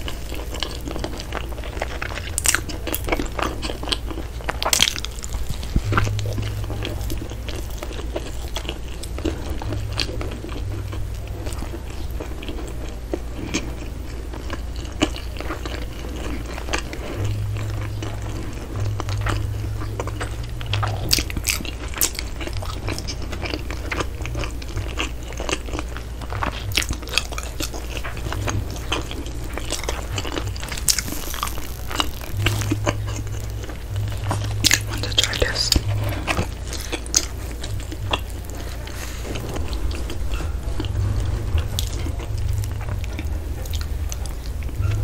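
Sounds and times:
crust crackling: 0.0 - 45.0
person chewing bread: 0.0 - 45.0
steady low hum: 0.0 - 45.0.

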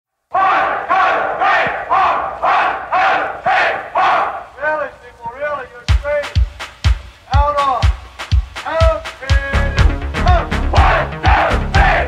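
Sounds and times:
looped crowd shout: 0.3 - 4.6, 10.2 - 12.0
industrial dance music: 5.7 - 12.0.

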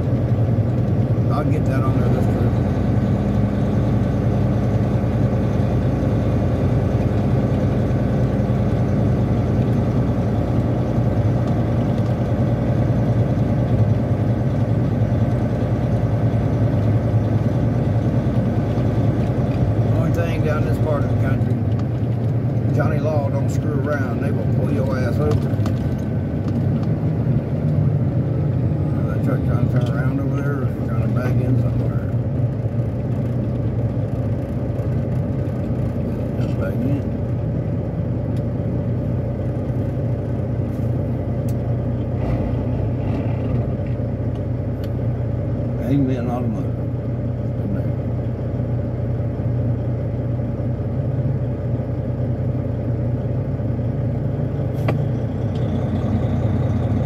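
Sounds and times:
diesel truck engine drone: 0.0 - 57.0.

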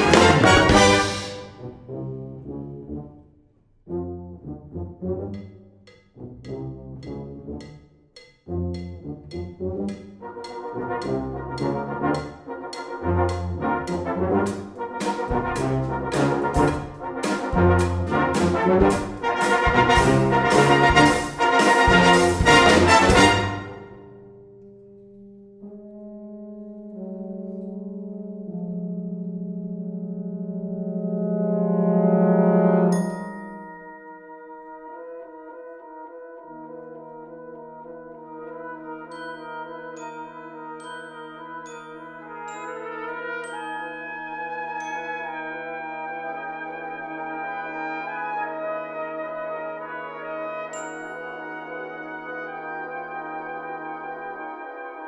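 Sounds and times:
brass band playing soft chords: 0.0 - 7.8, 8.5 - 41.4
glockenspiel strikes: 32.9 - 35.0, 39.1 - 45.4.

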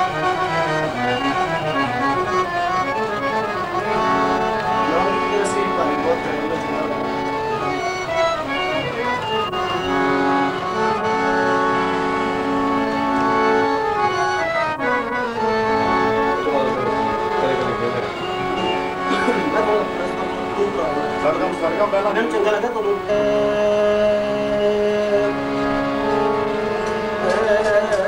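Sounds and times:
harmonium playing: 0.0 - 28.0
person singing long notes: 22.9 - 28.0.

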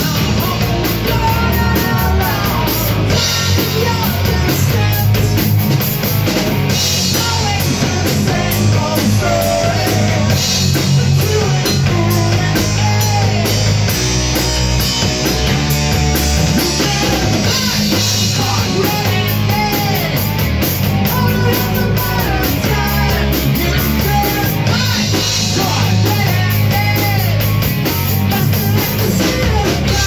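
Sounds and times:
person singing into a microphone: 0.0 - 5.4, 7.0 - 13.8, 16.5 - 20.2, 21.0 - 30.0
live rock band playing: 0.0 - 30.0.

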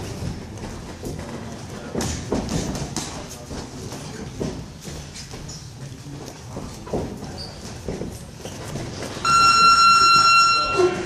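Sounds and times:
high-pitched timer buzzer: 9.2 - 11.0.

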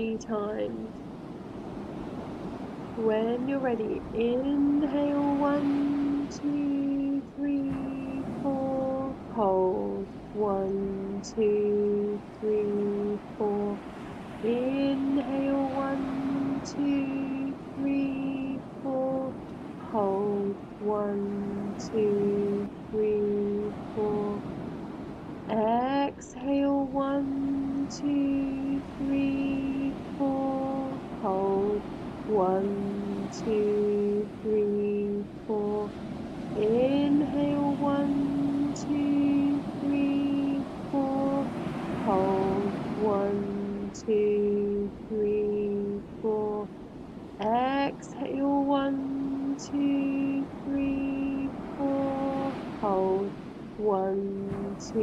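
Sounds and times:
woman counting slowly: 0.0 - 0.9, 3.0 - 13.8, 14.4 - 24.4, 25.5 - 35.9, 36.5 - 46.7, 47.4 - 55.0
surf: 0.0 - 55.0.

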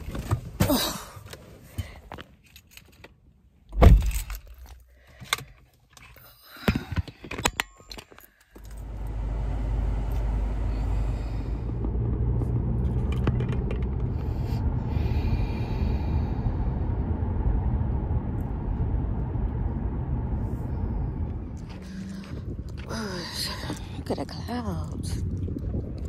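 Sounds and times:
car engine rumble inside cabin: 8.6 - 26.0.

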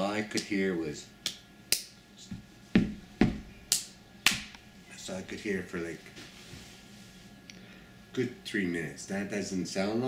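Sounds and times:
hand slaps on a surface: 1.2 - 4.6.

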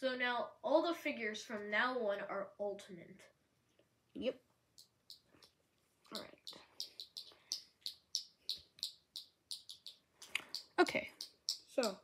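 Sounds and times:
bird chirping: 4.8 - 12.0.

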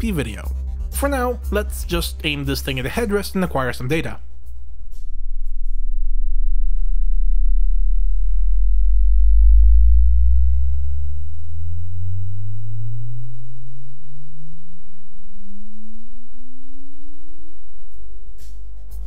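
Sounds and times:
subwoofer rising sine sweep: 0.0 - 19.0.

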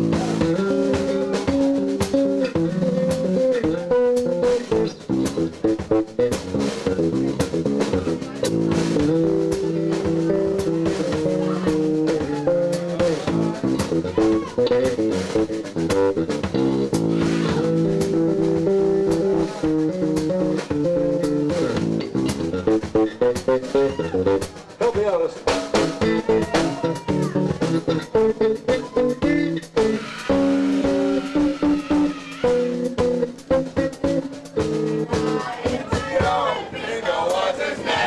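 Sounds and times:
electric bass: 0.0 - 24.6, 25.5 - 35.3
electric guitar: 0.0 - 24.8, 25.4 - 35.5
drum kit beat: 0.0 - 38.0.

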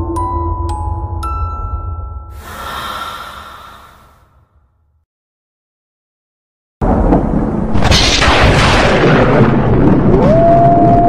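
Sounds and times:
breathy rushing sound effect: 2.4 - 4.5.

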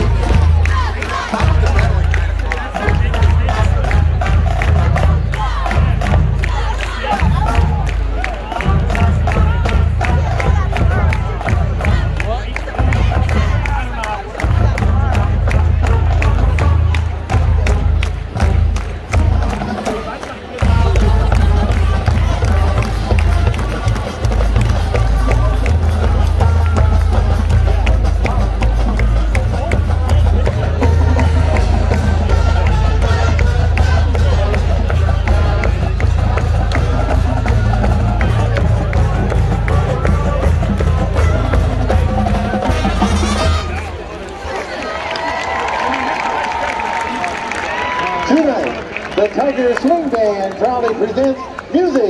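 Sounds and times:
steady drum beat: 0.0 - 44.1
crowd cheering and shouting: 0.0 - 52.0
marching band playing: 0.0 - 52.0.

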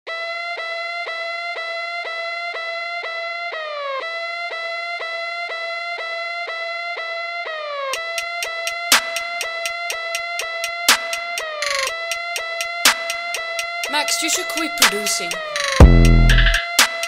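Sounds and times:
siren-like synth lead: 0.1 - 17.0.

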